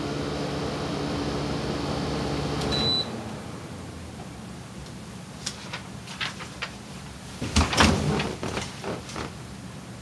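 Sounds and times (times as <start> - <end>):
air conditioner humming: 0.0 - 10.0
short electronic beep: 2.7 - 3.1.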